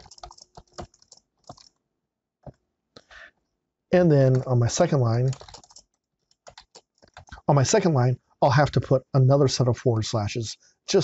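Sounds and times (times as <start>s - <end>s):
computer keyboard typing: 0.0s - 1.8s, 4.3s - 4.5s, 5.2s - 7.4s.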